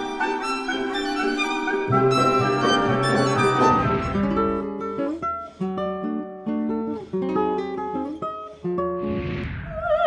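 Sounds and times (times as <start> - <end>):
classical guitar fingerstyle: 0.0 - 9.1.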